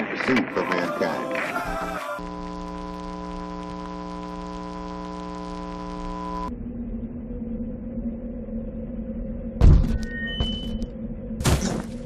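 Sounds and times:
electrical hum: 1.7s - 12.0s.

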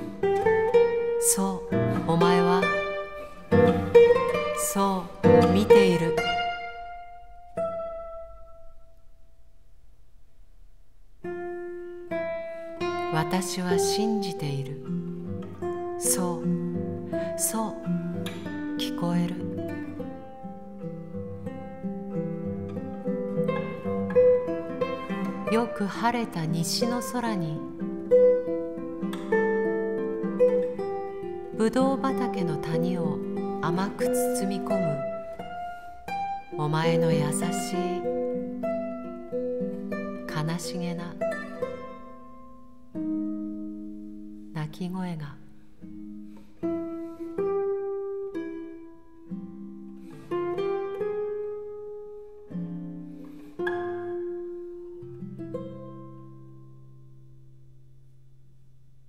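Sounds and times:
classical guitar plucked notes: 0.0s - 59.0s.

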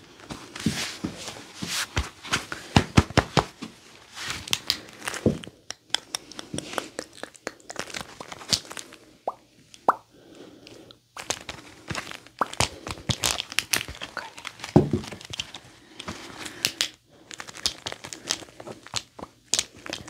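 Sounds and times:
shoes clicking and tapping: 0.2s - 3.8s.

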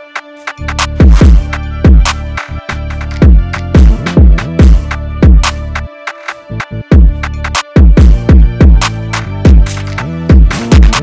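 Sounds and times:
drill beat with sliding bass: 0.0s - 11.0s.

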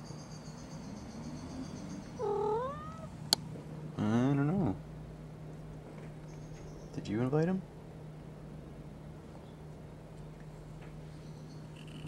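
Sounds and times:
cat meowing: 2.2s - 3.2s.

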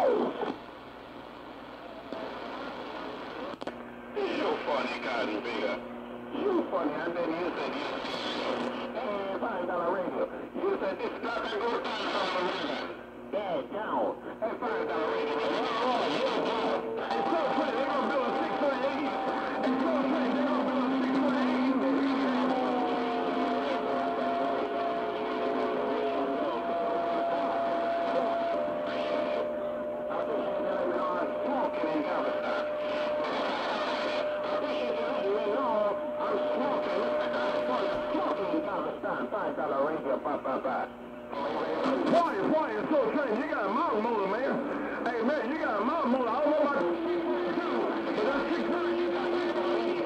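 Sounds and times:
distant radio stations talking: 0.0s - 50.0s
radio static: 0.0s - 50.0s.

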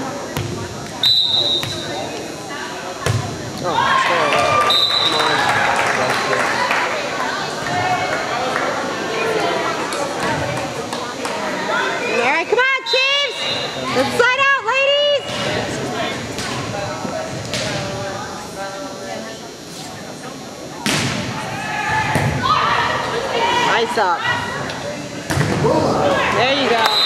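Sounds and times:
volleyball thuds: 3.0s - 3.4s.

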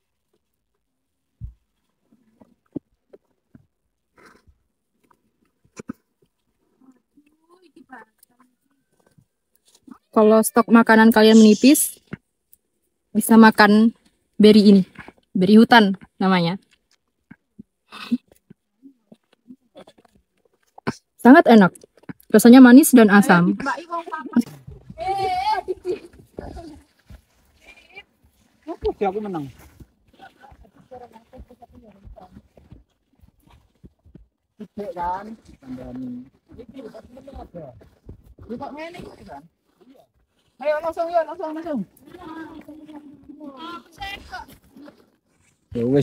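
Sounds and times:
people talking: 10.2s - 12.0s
person speaking: 10.2s - 12.0s.

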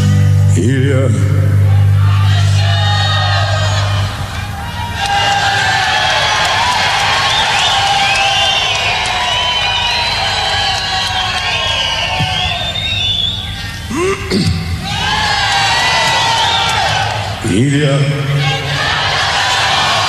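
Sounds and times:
concert audience cheering and screaming: 1.4s - 20.0s.

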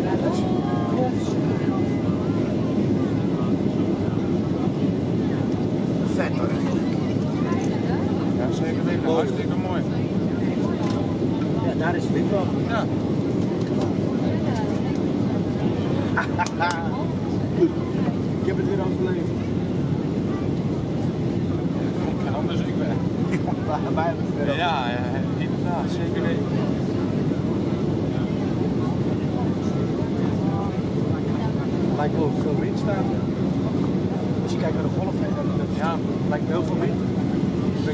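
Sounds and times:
airplane cabin rumble: 0.0s - 37.9s
faint conversation: 0.0s - 37.9s
faint voices: 0.0s - 37.9s.

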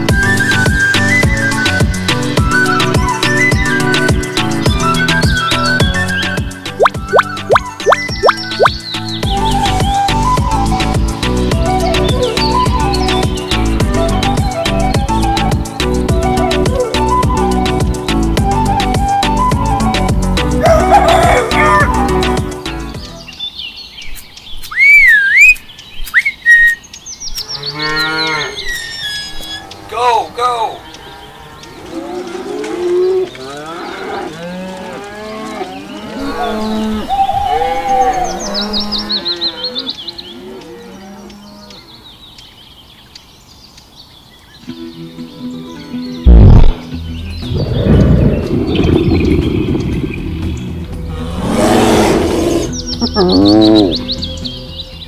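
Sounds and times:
background music: 0.0s - 23.5s, 44.6s - 55.0s
cow mooing: 27.6s - 28.8s, 31.0s - 37.1s, 37.8s - 42.0s, 51.1s - 54.1s
low boom: 46.3s - 51.3s
big cat roar: 47.5s - 54.1s.

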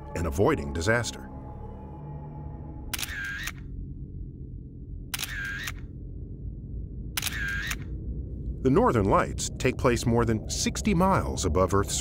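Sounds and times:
low droning music: 0.0s - 12.0s.

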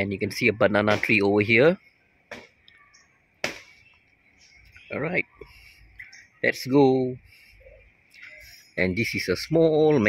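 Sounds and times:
man's voice: 0.0s - 1.8s, 4.9s - 5.4s, 6.4s - 7.2s, 8.8s - 10.0s.

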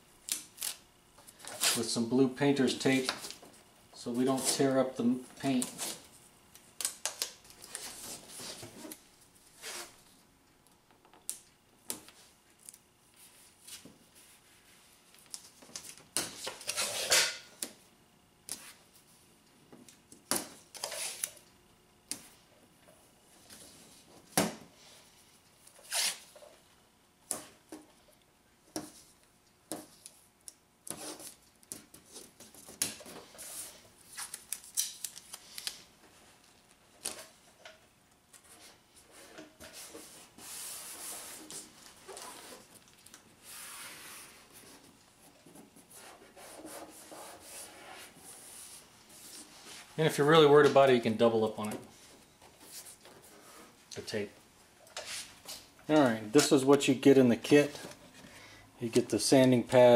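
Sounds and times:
tape ripping: 0.3s - 0.8s, 20.7s - 21.4s, 25.7s - 26.3s, 34.1s - 35.8s
tape unrolling pull: 25.7s - 26.3s.

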